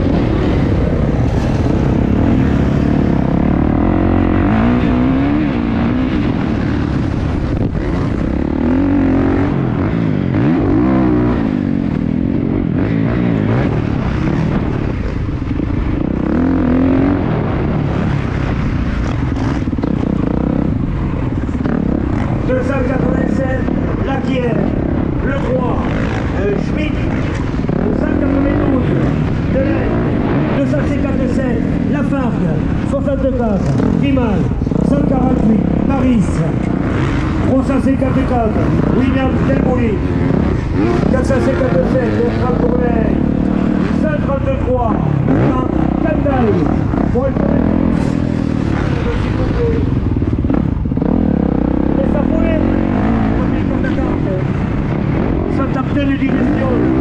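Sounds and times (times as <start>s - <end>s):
motocross engine revving: 0.0s - 57.0s.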